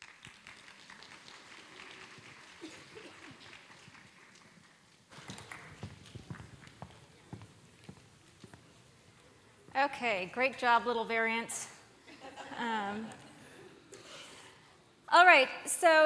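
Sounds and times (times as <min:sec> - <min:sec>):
footsteps on wooden stage: 0:05.1 - 0:09.9.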